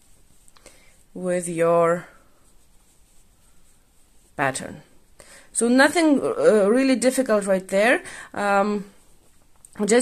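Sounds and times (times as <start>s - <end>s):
small handling sounds: 0.0s - 5.2s, 8.8s - 10.0s
yarn rustling with crochet hook: 0.0s - 10.0s.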